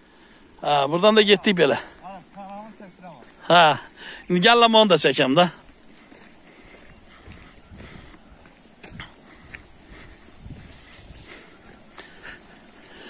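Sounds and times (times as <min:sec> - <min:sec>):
footsteps on wet gravel: 0:00.0 - 0:13.0.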